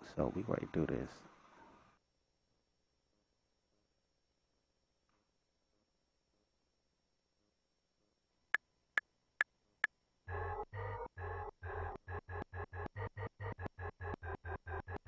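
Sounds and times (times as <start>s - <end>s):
bass: 10.3s - 15.0s.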